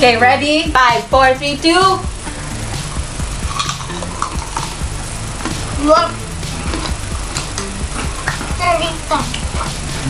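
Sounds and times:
people chewing crunchy crisps: 0:03.4 - 0:04.7, 0:06.4 - 0:08.6.

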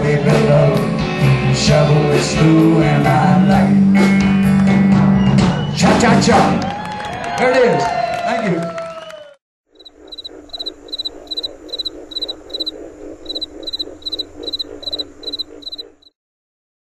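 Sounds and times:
chorus of frogs and insects: 0:09.8 - 0:16.1
high frog chirps: 0:09.8 - 0:16.1.

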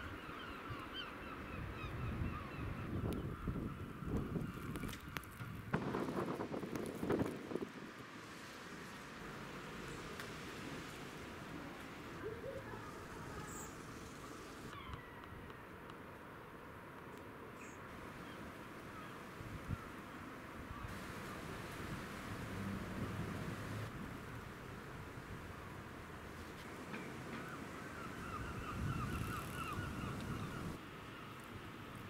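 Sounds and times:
bird calls: 0:27.3 - 0:30.8.

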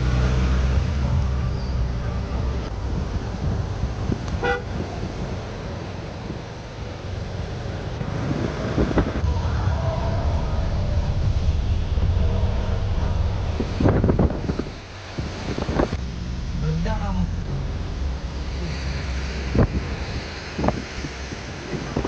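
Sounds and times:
road rumble and tyre hiss: 0:00.0 - 0:22.0
vehicle horn toot: 0:04.4 - 0:04.7.

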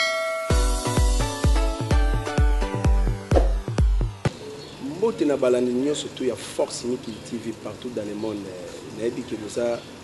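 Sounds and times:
electronic music jingle: 0:00.0 - 0:04.3.

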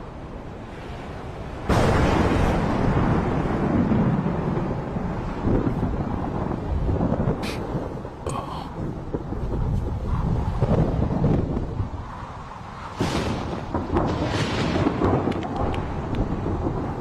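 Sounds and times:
thunder rumbling: 0:00.0 - 0:17.0.

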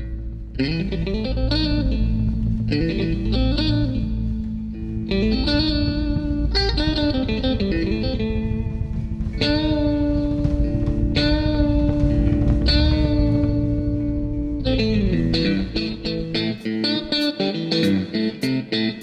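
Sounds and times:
electric guitar: 0:00.0 - 0:19.0
drums: 0:00.4 - 0:18.6.

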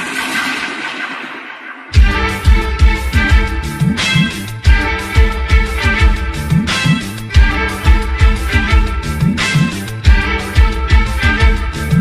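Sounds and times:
band with bass and drums: 0:02.0 - 0:12.0.

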